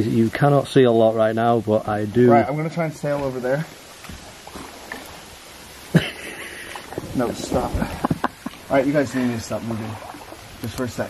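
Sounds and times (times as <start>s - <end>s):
soft steady hiss: 0.0s - 11.0s
water drips: 0.0s - 11.0s.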